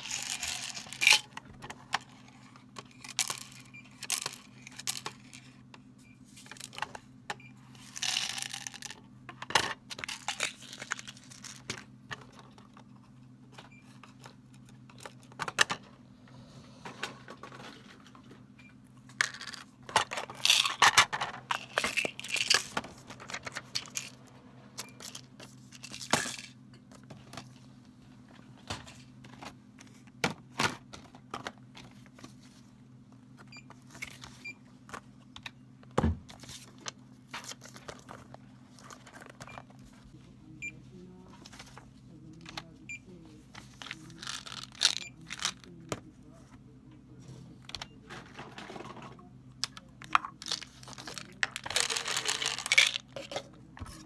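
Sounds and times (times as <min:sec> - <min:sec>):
pills rattling on plastic tray: 0:00.0 - 0:01.4, 0:07.8 - 0:09.0, 0:09.9 - 0:11.8, 0:19.2 - 0:24.2, 0:43.6 - 0:45.7, 0:49.7 - 0:53.6.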